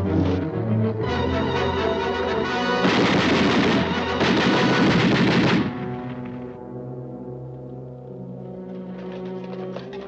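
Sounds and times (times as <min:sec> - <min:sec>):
orchestral film score: 0:00.0 - 0:10.0
rifle and machine-gun fire: 0:02.8 - 0:05.9.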